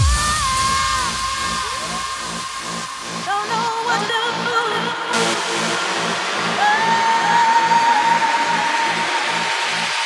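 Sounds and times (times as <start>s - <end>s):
trance dance music: 0.0s - 10.0s.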